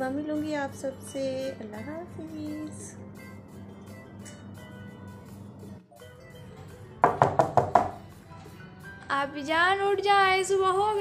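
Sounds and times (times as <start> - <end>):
faint background music: 0.0 - 11.0
knocking on wooden door: 7.0 - 8.0.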